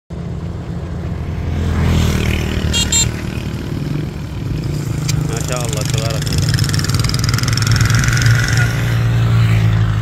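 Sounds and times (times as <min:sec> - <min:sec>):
engine running with low rumble: 0:00.1 - 0:10.0.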